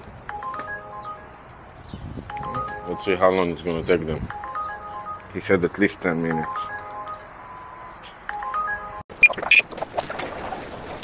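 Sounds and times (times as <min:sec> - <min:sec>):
quiet electronic melody: 0:00.2 - 0:09.1.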